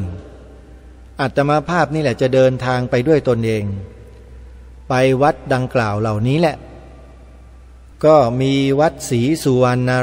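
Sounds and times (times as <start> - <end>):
man talking through microphone: 0.0 - 0.4, 1.2 - 4.0, 4.9 - 6.7, 8.0 - 10.0
faint low hum: 0.0 - 10.0.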